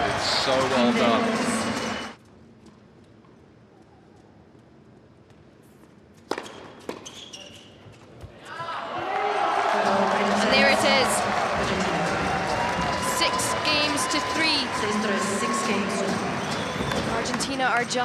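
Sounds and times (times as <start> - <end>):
crowd cheering and shouting: 0.0 - 2.2, 8.5 - 17.6
tennis ball struck by rackets: 6.2 - 7.0.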